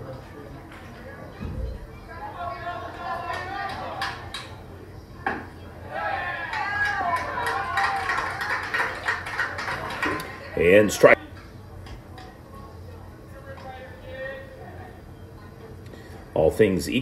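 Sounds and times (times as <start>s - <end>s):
people talking: 9.7s - 17.0s.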